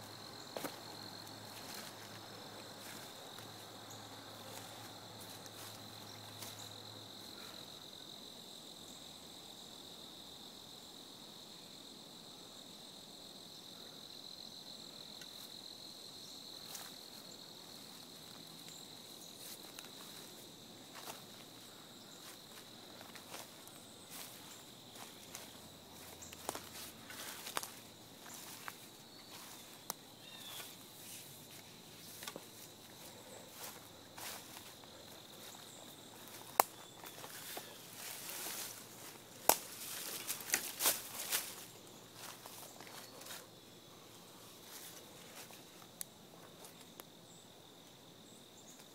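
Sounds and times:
insects trilling: 0.0 - 48.9
footsteps through dry leaves: 24.1 - 30.6, 36.2 - 43.0.

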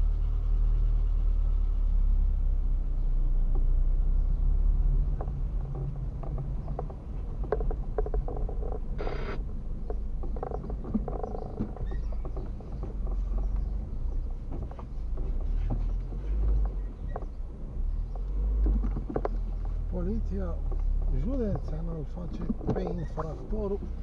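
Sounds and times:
car engine and road rumble: 0.0 - 24.0
small clicks and rattles: 5.0 - 19.9.

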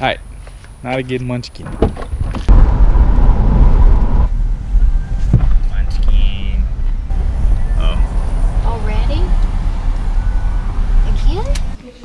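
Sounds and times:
road and engine noise in car: 1.8 - 12.0.

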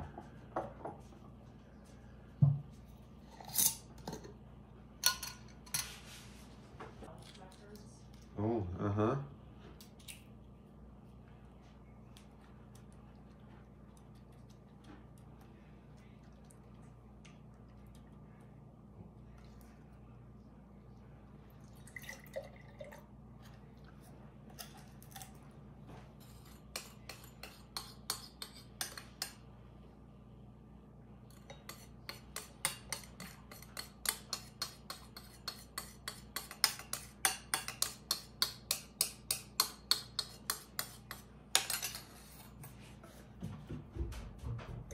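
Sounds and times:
faint room hum: 0.0 - 44.9.

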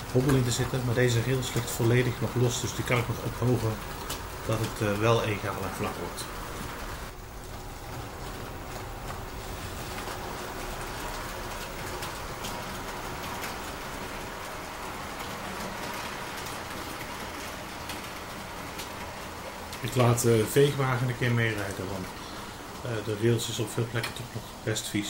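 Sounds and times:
model train wheels on rails: 0.0 - 25.0.

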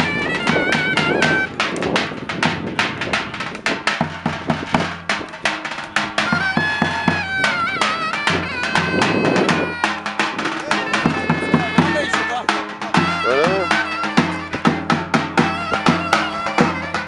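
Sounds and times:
high wavering reed pipe melody: 0.0 - 1.7, 5.2 - 17.0
rapid drum strokes: 0.0 - 17.0.

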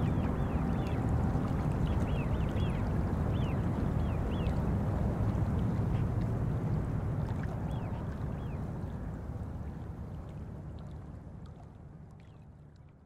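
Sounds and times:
water rushing and gurgling: 0.0 - 9.4.

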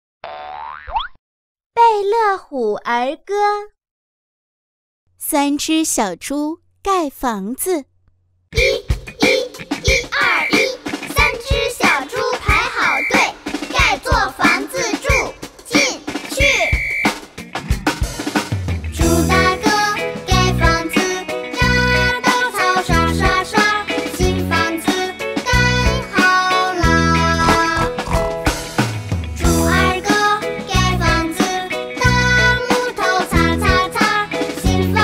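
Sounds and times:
cartoon boing sound effect: 0.2 - 1.2, 27.5 - 28.4
person speaking: 5.2 - 7.9
child-like voice singing: 8.6 - 16.8, 19.0 - 28.3, 29.6 - 35.0
bright backing track with kick drum: 26.9 - 29.8.

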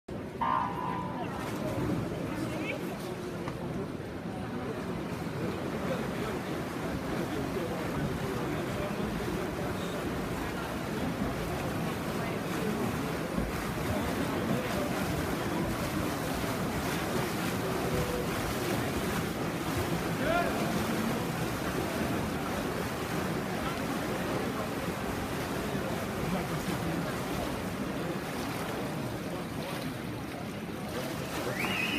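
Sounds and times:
water splashing from swimmers: 0.1 - 31.9.

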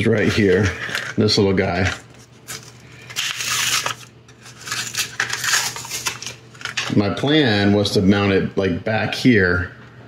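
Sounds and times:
plastic blister pack tearing: 1.8 - 7.0.

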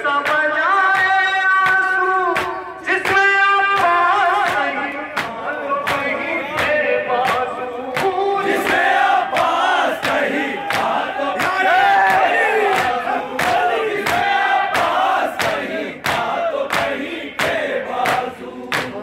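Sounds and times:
men chanting together: 0.0 - 19.0
rhythmic chest beating: 0.0 - 19.0.

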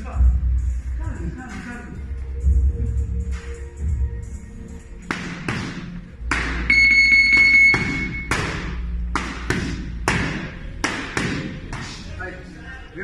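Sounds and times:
boxing gloves striking mitts: 5.0 - 6.7, 7.3 - 12.0
high electronic beep: 6.7 - 8.3.

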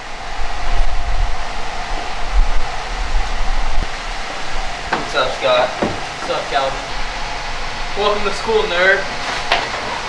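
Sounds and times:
wind buffeting microphone: 0.0 - 8.3
steady hum: 0.0 - 10.0.

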